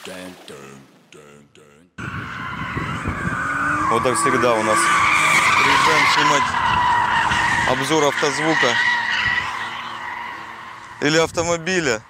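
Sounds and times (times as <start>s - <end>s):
car tyres screeching: 2.0s - 12.0s.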